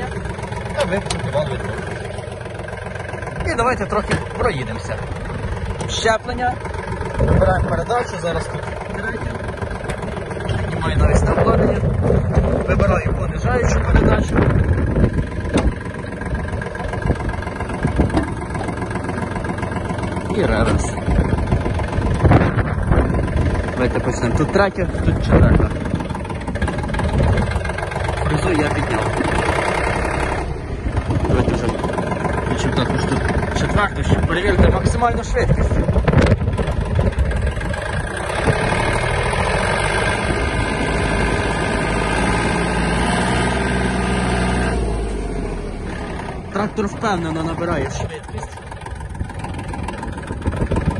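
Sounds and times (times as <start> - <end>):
tractor diesel engine running: 0.0 - 50.9.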